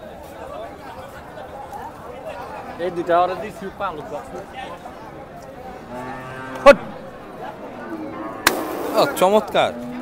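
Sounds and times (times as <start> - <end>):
cow mooing: 5.8 - 6.9, 9.5 - 10.0
sharp knock: 8.4 - 9.1.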